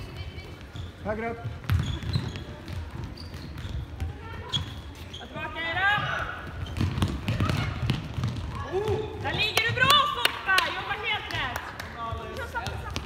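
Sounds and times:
shoe squeaks: 0:00.0 - 0:07.8
ball being kicked: 0:06.7 - 0:09.8.

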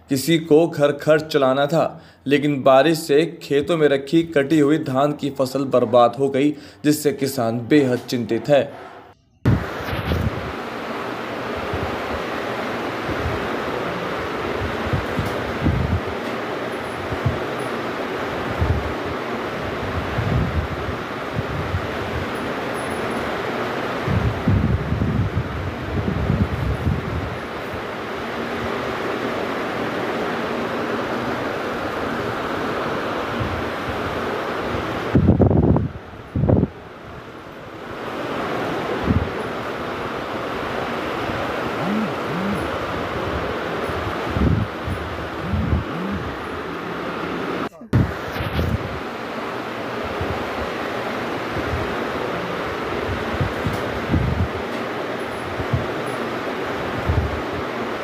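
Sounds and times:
wind buffeting microphone: 0:09.4 - 0:10.6, 0:13.0 - 0:16.2, 0:17.0 - 0:17.5, 0:18.4 - 0:22.4, 0:24.0 - 0:27.6, 0:33.3 - 0:37.3, 0:40.7 - 0:46.7, 0:47.8 - 0:49.1, 0:52.7 - 0:54.6, 0:56.9 - 0:57.6.

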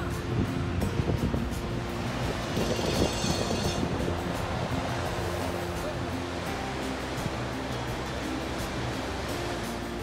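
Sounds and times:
wind buffeting microphone: 0:00.0 - 0:05.5
faint background music: 0:00.0 - 0:10.0
ocean surf breaking: 0:00.9 - 0:10.0.

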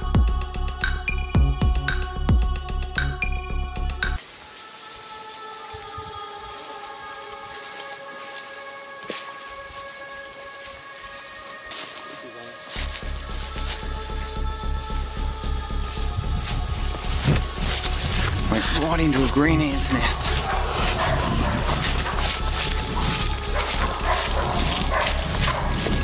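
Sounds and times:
deep bass and beat: 0:00.0 - 0:04.2, 0:12.8 - 0:26.0
held synth chords: 0:13.0 - 0:26.0.

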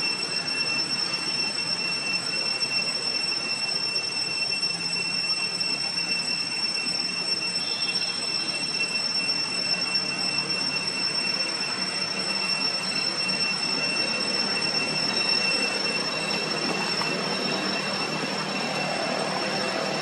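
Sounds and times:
high-pitched whine: 0:00.0 - 0:20.0
steady background noise: 0:00.0 - 0:20.0.

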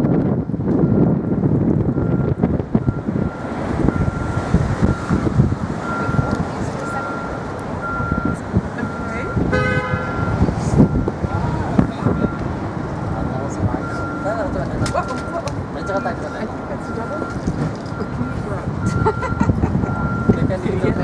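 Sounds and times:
bus engine and road rumble: 0:00.0 - 0:21.0
high beeps: 0:02.0 - 0:11.1, 0:13.8 - 0:20.6
horn toot: 0:09.5 - 0:10.4.

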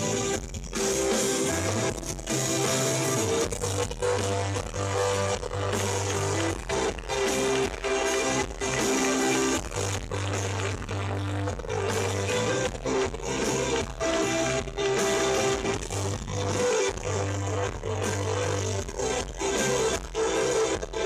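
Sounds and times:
rock band playing live: 0:00.0 - 0:21.0.

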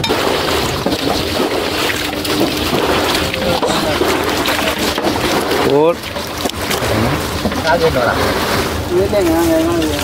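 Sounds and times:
water pump motor running: 0:00.0 - 0:10.0.

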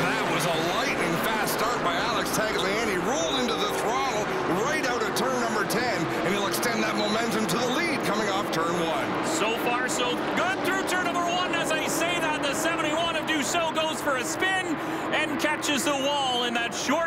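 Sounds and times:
commentator speaking: 0:00.0 - 0:17.0
race car engines: 0:00.0 - 0:17.0.

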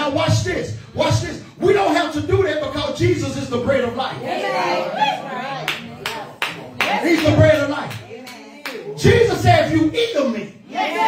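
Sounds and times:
congregation calling out: 0:00.0 - 0:11.0.

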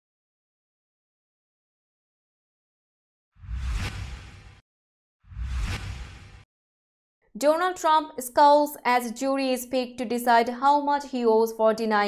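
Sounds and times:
whoosh sound effect: 0:03.4 - 0:04.6, 0:05.3 - 0:06.4.

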